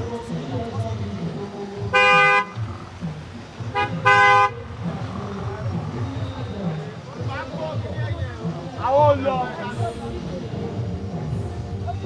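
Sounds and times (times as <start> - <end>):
low voices: 0.0 - 12.0
car horn honking: 1.9 - 2.6, 3.7 - 4.7.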